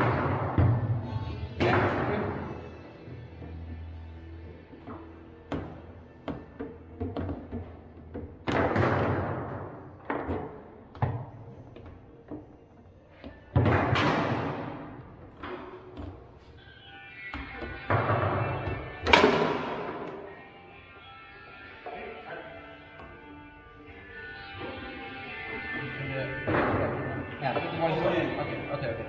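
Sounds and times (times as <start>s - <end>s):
background music: 0.0s - 29.0s.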